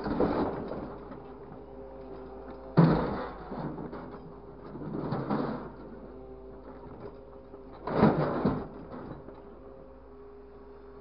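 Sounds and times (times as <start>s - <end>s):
truck engine and hydraulics whining: 0.0s - 11.0s.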